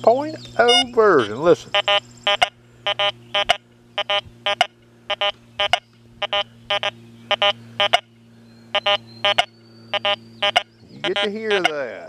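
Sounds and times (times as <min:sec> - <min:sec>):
metal detector beeps: 0:00.6 - 0:01.0, 0:01.7 - 0:08.1, 0:08.7 - 0:11.8.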